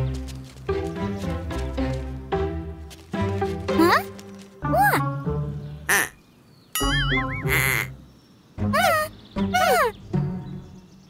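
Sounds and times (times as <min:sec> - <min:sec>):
light music: 0:00.0 - 0:06.1, 0:06.8 - 0:11.0
squeaky quack-like cartoon voice: 0:05.9 - 0:06.1, 0:06.8 - 0:07.9, 0:08.7 - 0:09.9.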